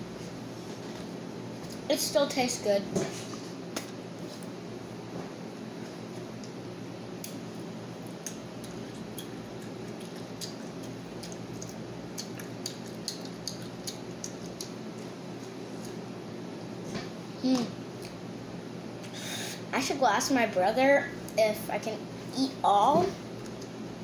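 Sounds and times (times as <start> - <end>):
steady low hum: 0.0 - 24.0
child chewing close to microphone: 7.2 - 16.1, 23.3 - 23.8
wet mouth clicks and smacks: 8.0 - 15.6.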